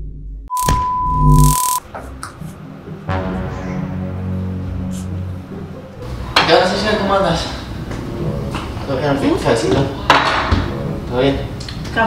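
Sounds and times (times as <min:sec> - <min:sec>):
high test-tone beep: 0:00.5 - 0:01.8
noisy glitch burst: 0:00.5 - 0:01.8
short glitchy clicks: 0:00.5 - 0:01.8.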